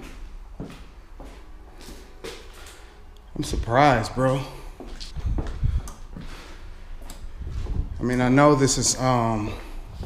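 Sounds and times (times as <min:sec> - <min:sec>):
footsteps on gritty floor: 0:00.0 - 0:10.0.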